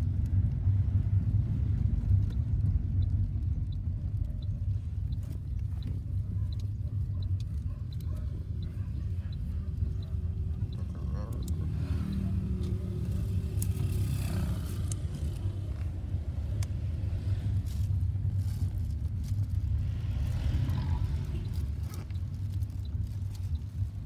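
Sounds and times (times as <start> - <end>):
car engine rumble: 0.0 - 24.0
road noise inside car: 0.0 - 24.0.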